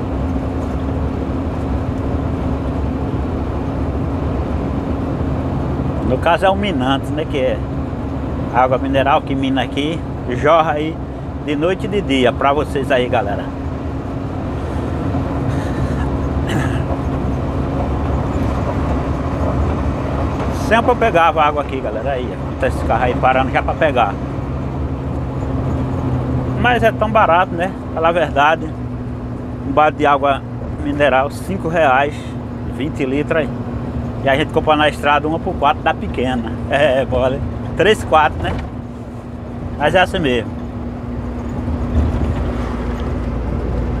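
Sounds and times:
constant hum: 0.0s - 44.0s
diesel engine drone: 0.0s - 44.0s
road noise: 0.0s - 44.0s.

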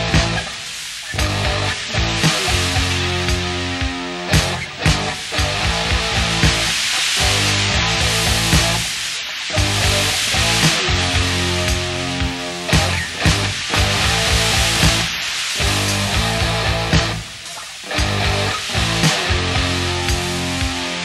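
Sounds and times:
drum hits: 0.0s - 0.5s, 1.2s - 8.9s, 9.6s - 17.3s
cymbal wash: 0.0s - 21.0s
rock band playing: 0.0s - 21.0s.

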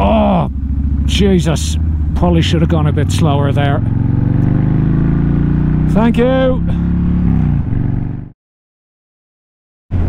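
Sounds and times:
motorcycle engine running: 0.0s - 8.3s
wind and road noise: 0.0s - 8.3s.

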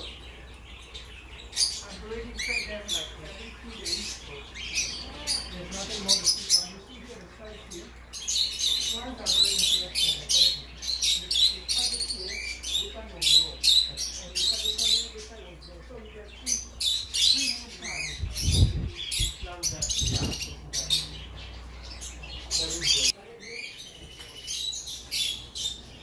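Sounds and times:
caged birds chirping and squawking: 0.0s - 26.0s.

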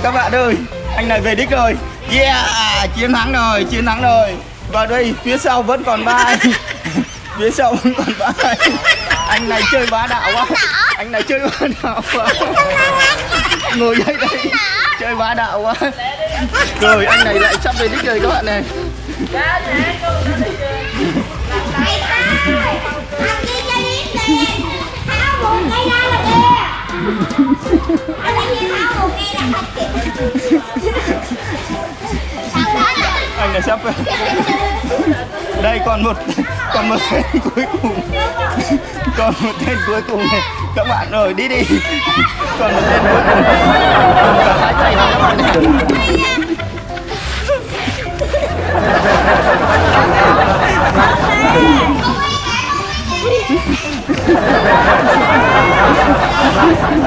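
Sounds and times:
children shouting and chattering: 0.0s - 57.0s.

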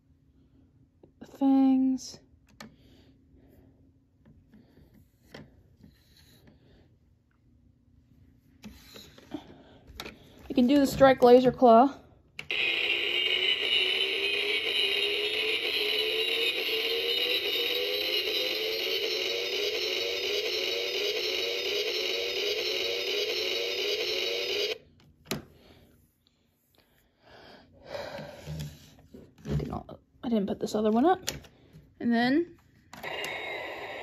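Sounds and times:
tinny electronic buzz with falling tone: 12.5s - 24.8s.

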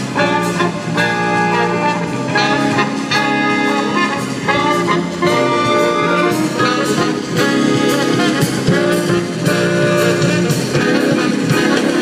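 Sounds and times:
cymbal and drum beat: 0.0s - 12.0s
jazz guitar: 0.0s - 12.0s.

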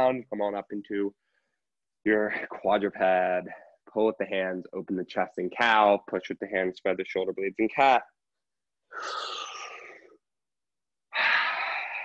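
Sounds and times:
long audible breaths: 11.1s - 12.0s.

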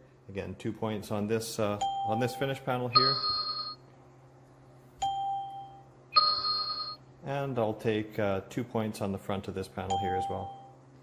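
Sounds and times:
electronic ding: 2.9s - 3.8s, 5.1s - 7.0s.

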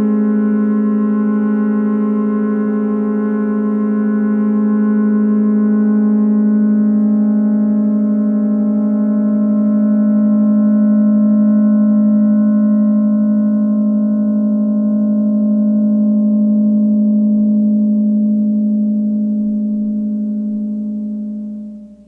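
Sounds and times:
low synthesizer drone: 0.0s - 22.0s.

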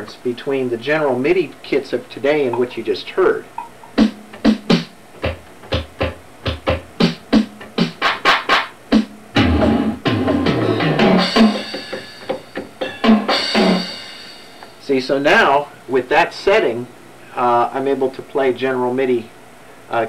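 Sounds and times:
synthesizer drum hits: 3.6s - 7.5s
ringing cymbal-like washes: 11.3s - 14.8s.

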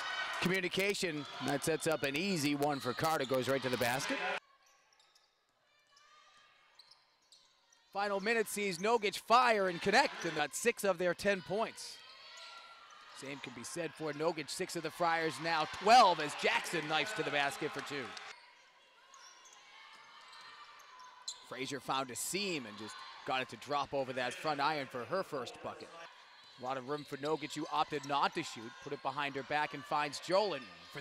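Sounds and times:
commentator's voice: 0.4s - 4.4s, 8.0s - 11.9s, 13.2s - 18.2s.

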